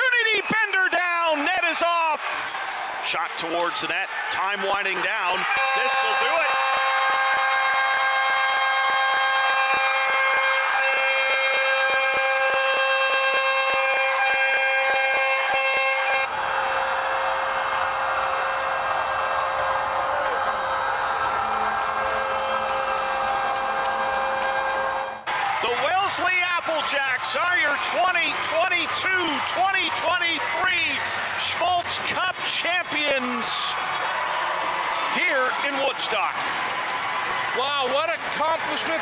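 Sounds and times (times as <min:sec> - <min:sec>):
crowd noise: 0:00.0 - 0:39.0
arena horn chord: 0:05.6 - 0:16.3.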